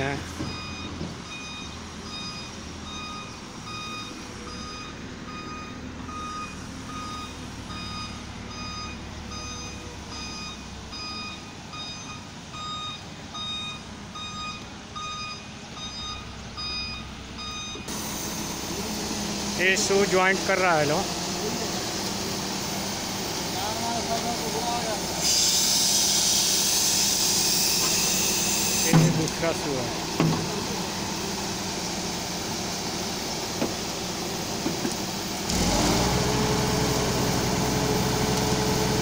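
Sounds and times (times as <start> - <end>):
truck engine rumble: 0.0 - 39.0
reversing alarm beeping: 0.1 - 18.6.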